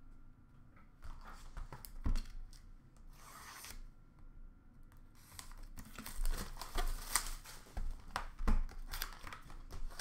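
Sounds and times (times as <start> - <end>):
card pack wrapper tearing and crinkling: 5.2 - 10.0.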